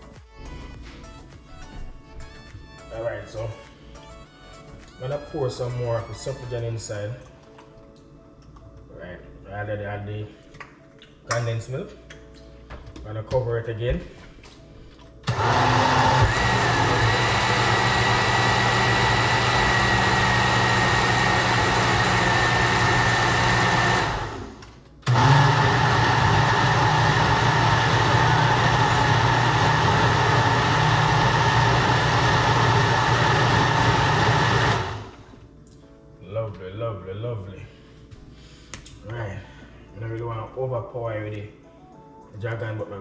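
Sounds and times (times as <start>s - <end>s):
countertop blender running: 15.2s - 35.3s.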